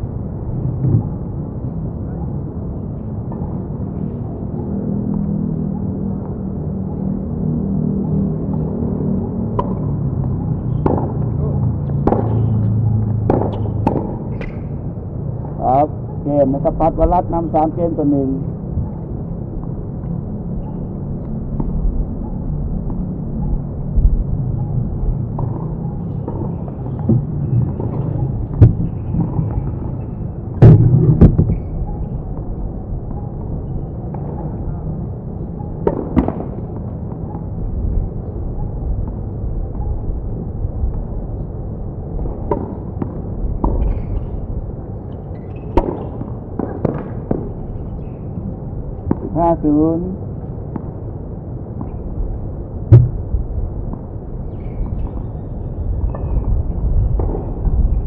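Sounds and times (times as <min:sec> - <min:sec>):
steady low rumble: 0:00.0 - 0:45.0, 0:46.2 - 0:58.0
tennis balls struck by rackets: 0:09.5 - 0:15.0, 0:35.4 - 0:39.8, 0:42.1 - 0:48.4, 0:49.0 - 0:52.1.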